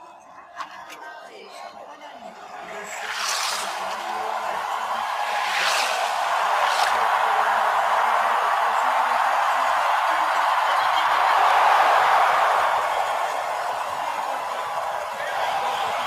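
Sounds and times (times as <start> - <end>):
skis rushing hiss on track: 2.6 - 7.4.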